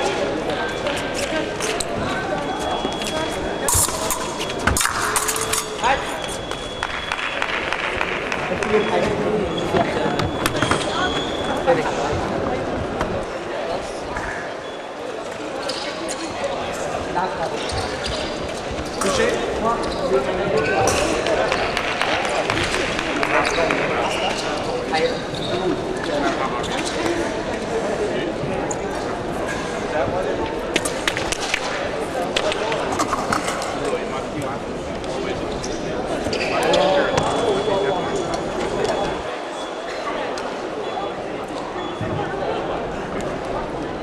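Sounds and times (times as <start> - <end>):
indistinct voices: 0.0 - 44.0.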